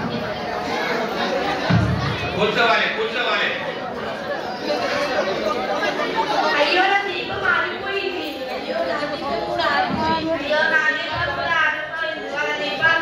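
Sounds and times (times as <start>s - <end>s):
overlapping chatter of voices: 0.0s - 13.0s.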